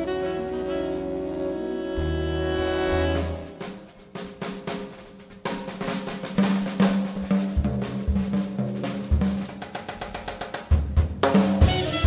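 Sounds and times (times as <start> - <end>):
drum kit snare hits and rimshots: 3.0 - 12.0.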